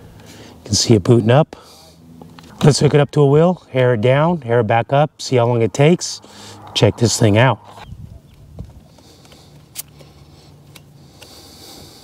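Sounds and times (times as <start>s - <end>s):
sharp clicks of hose fitting: 9.2s - 10.1s, 10.7s - 11.4s.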